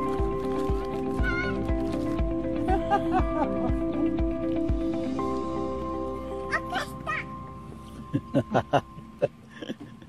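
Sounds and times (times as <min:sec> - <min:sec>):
background music with steady beat: 0:00.0 - 0:09.8.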